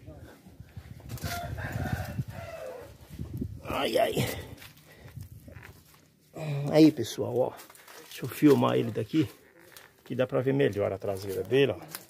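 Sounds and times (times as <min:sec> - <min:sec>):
rooster crowing: 0:01.2 - 0:03.0.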